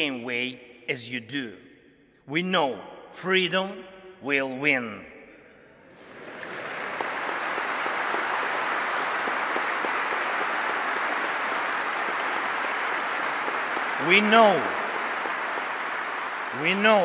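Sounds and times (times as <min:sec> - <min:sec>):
large audience applauding: 0:05.9 - 0:17.0.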